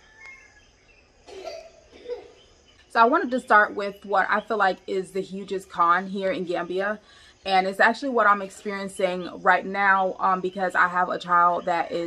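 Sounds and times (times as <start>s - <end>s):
short breath: 7.0s - 7.4s.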